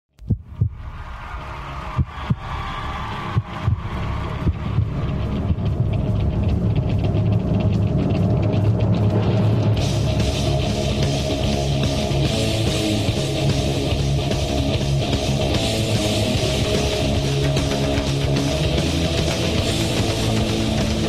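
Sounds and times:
deep heartbeat-like hits: 0:00.2 - 0:01.1, 0:03.3 - 0:21.0.

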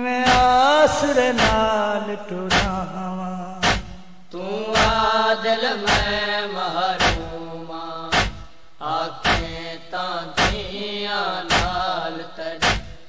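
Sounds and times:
men chanting a lament: 0:00.0 - 0:13.0
hands beating on chests: 0:03.6 - 0:04.0, 0:09.3 - 0:09.5, 0:12.6 - 0:13.0.

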